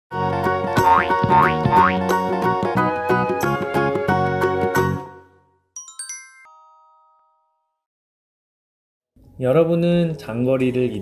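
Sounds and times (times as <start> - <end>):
cheerful jingle music: 0.2 - 7.9
rising cartoon boing effects: 0.8 - 2.0.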